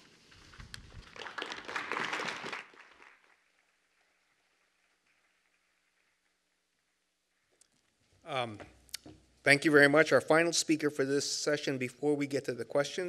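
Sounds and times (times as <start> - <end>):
audience applauding: 1.0 - 3.9.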